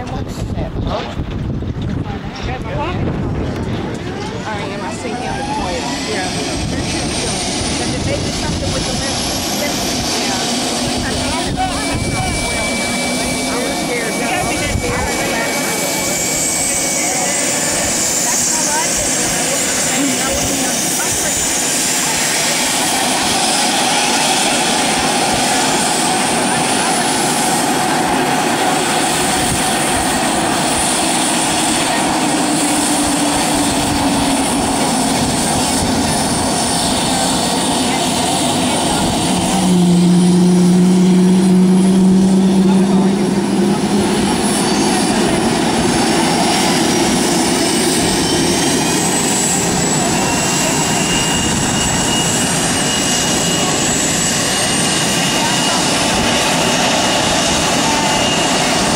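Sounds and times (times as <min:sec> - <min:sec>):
jet engines idling: 0:00.0 - 0:58.9.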